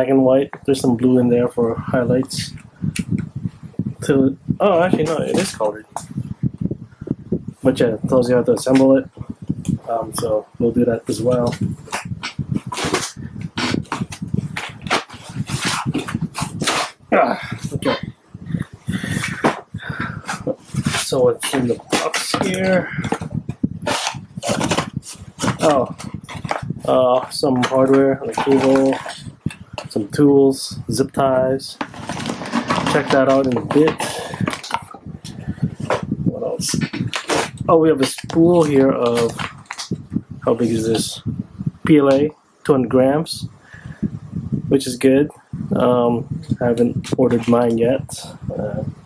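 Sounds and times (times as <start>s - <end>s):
foam rubbing against cardboard: 11.1s - 17.0s, 18.6s - 30.0s.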